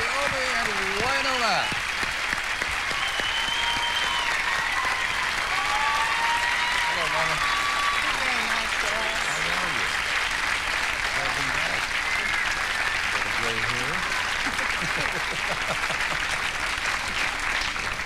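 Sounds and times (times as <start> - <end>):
audience applauding: 0.0 - 18.0.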